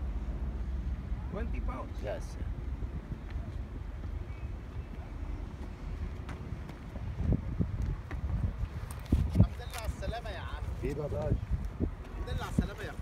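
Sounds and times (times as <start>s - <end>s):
wind rumbling on microphone: 2.0s - 13.0s.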